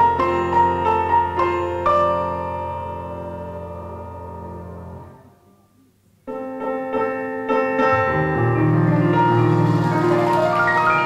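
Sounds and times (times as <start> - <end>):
piano music: 0.0 - 5.4, 6.3 - 11.0.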